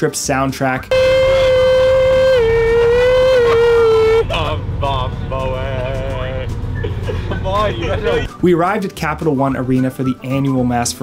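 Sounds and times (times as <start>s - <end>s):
bus engine rumble: 0.9s - 8.3s.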